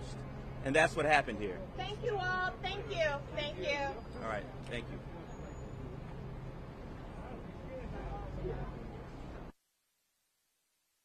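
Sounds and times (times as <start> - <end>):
constant low hum: 0.0 - 9.5
street traffic rumble: 0.0 - 9.6.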